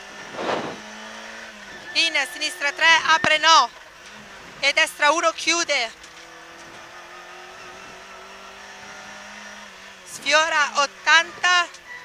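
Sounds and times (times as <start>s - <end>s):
car engine running: 0.0s - 12.0s
brief rushing noise: 0.3s - 0.8s.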